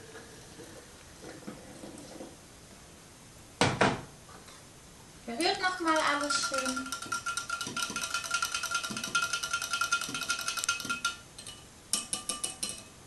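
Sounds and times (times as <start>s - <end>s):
whisk wires clinking against glass: 5.9s - 13.0s
glass ringing: 6.2s - 13.0s.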